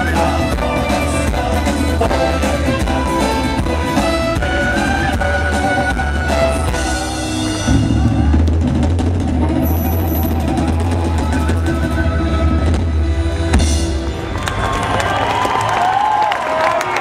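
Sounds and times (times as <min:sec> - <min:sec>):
drum roll: 0:00.0 - 0:15.0
folk-rock band playing: 0:00.0 - 0:15.1
crowd cheering: 0:07.6 - 0:12.8, 0:13.9 - 0:17.0.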